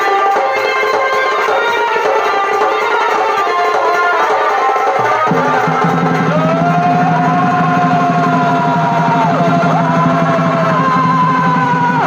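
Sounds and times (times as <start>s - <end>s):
fast steady drumming: 0.0s - 12.0s
shehnai holding long notes: 0.0s - 12.0s.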